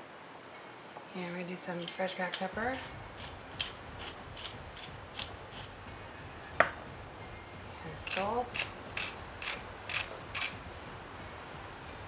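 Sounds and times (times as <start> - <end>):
pepper mill grinding: 1.8 - 5.7, 8.0 - 10.8.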